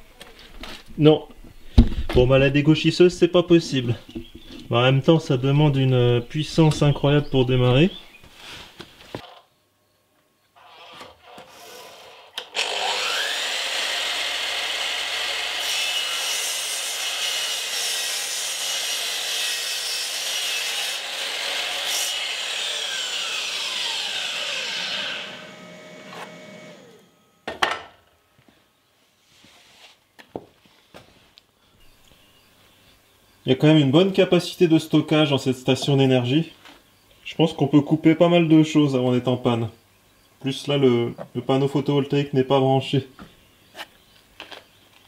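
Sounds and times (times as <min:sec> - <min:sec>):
mitre saw cutting wood: 0:10.6 - 0:27.2
saw blade winding down: 0:10.6 - 0:27.3.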